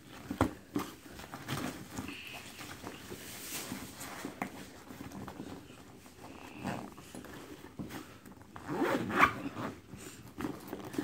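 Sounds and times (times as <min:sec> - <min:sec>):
zipper on fabric bag: 0:06.2 - 0:07.4, 0:08.5 - 0:11.0.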